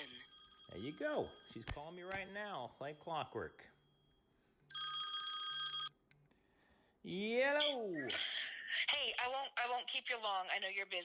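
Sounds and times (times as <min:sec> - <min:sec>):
phone ringing: 0:00.0 - 0:06.0.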